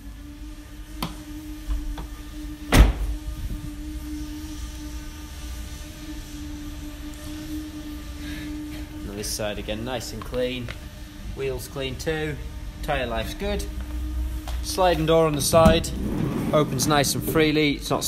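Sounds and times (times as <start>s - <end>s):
steady low hum: 0.0s - 18.0s
van door slamming: 2.7s - 3.2s.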